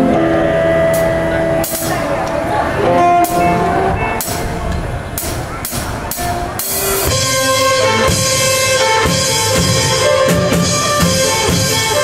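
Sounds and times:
cymbal hits: 3.1 - 7.8.

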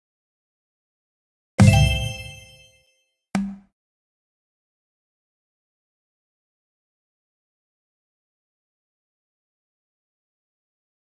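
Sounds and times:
bell-like ding with low thud: 1.6 - 2.8.

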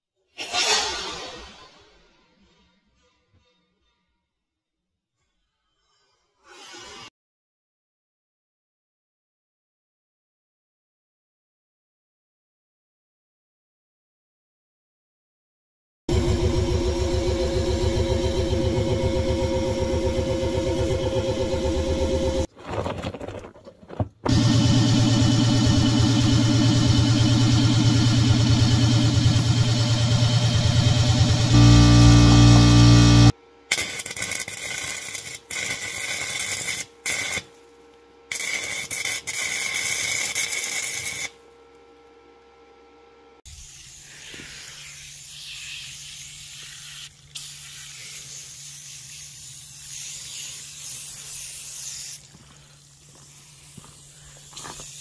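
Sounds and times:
air compressor running: 16.1 - 22.5, 24.3 - 42.8
low steady hum: 24.4 - 33.6
welding hissing crackle: 28.7 - 41.4, 43.5 - 55.0.

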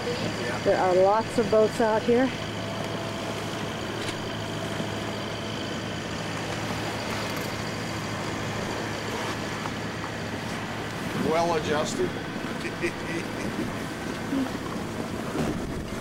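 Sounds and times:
steady low hum: 0.0 - 16.0
wind and water noise: 0.0 - 16.0.

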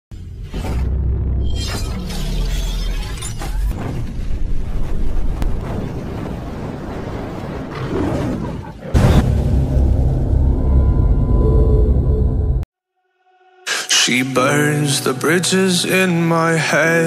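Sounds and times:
deep bass booms: 9.0 - 12.6
cinematic logo music: 9.0 - 17.0.

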